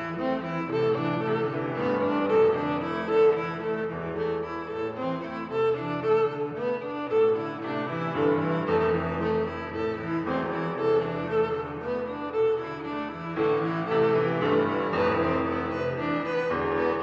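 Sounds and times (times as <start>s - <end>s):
cello and violin music: 0.0s - 17.0s.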